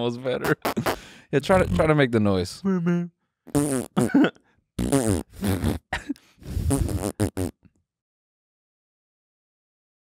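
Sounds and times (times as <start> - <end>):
man making sliding vocal noises: 0.5 - 1.9, 5.2 - 7.4.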